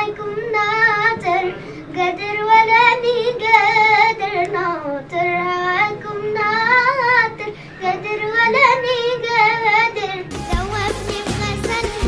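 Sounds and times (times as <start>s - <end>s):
girl singing unaccompanied: 0.0s - 12.0s.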